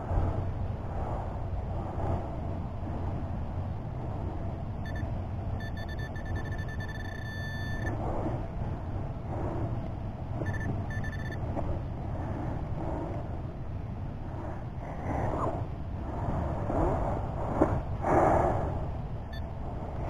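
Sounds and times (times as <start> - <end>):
low rumble: 0.0 - 20.0
metal detector pinpointer beeps: 4.8 - 8.0, 10.4 - 11.4.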